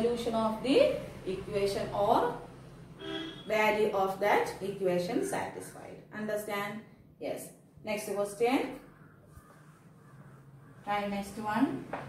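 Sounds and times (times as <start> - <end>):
whiteboard eraser rubbing: 9.3 - 10.4.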